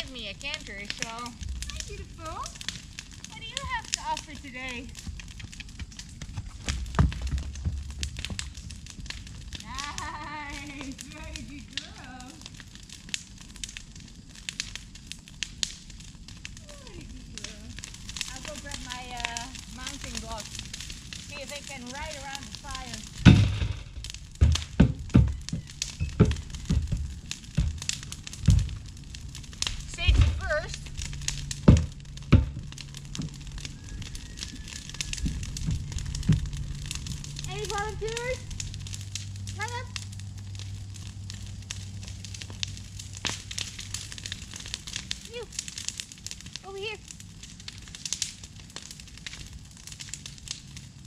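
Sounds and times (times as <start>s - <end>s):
bonfire crackling: 0.0s - 51.0s
sharp pops from fire: 0.0s - 51.0s
heavy low thumps and knocks: 5.0s - 9.4s, 23.1s - 38.9s.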